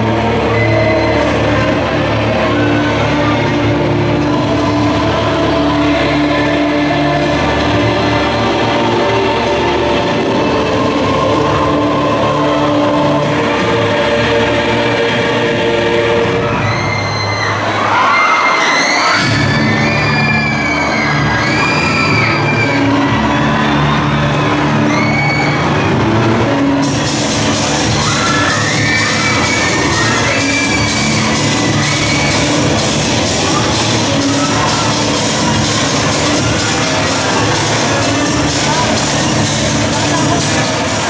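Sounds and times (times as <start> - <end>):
loud music with sustained bass: 0.0 - 18.1, 19.1 - 41.0
audience cheering and shouting: 15.5 - 41.0.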